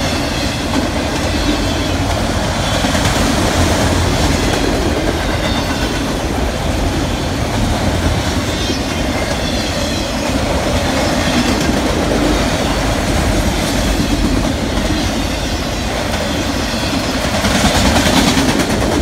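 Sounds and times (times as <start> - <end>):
freight train wheels on rails: 0.0 - 19.0.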